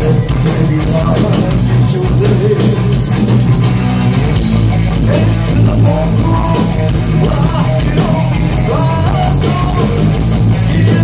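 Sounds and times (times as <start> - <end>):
drum kit: 0.0 - 11.0
electric guitar: 0.0 - 11.0.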